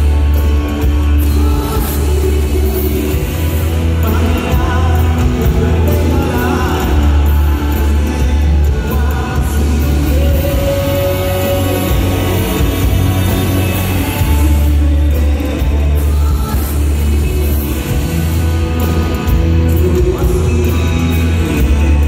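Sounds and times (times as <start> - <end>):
bass line: 0.0 - 22.0
drums: 0.0 - 22.0
electric guitar: 0.0 - 22.0
person singing: 0.0 - 22.0.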